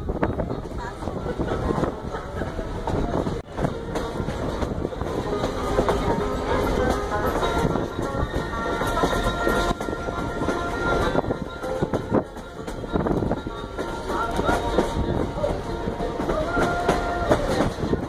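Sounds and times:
train wheels rattling on rails: 0.0s - 18.0s.

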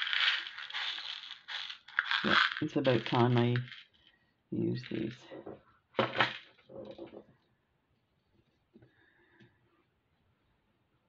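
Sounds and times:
beads pouring onto a tabletop: 0.0s - 4.2s.

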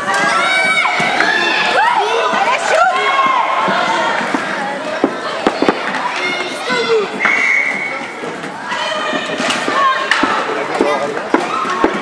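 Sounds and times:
hockey sticks knocking: 2.1s - 12.0s.

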